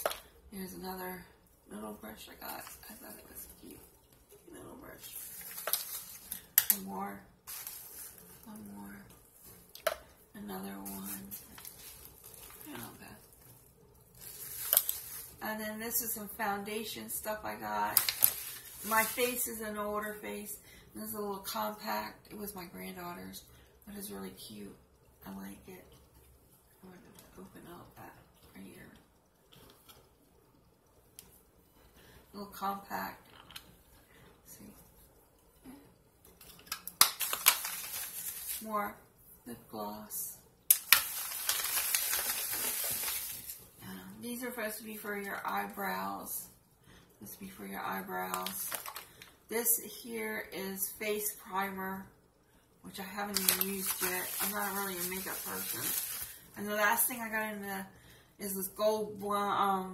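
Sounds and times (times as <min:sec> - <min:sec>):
small items rustling: 0:02.2 - 0:16.2, 0:17.6 - 0:20.2, 0:36.3 - 0:39.0, 0:40.7 - 0:44.0, 0:48.1 - 0:49.4, 0:52.9 - 0:57.1.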